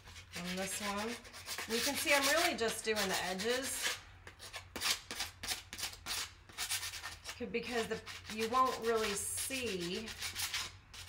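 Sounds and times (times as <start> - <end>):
sandpaper rubbing wood: 0.0 - 11.0.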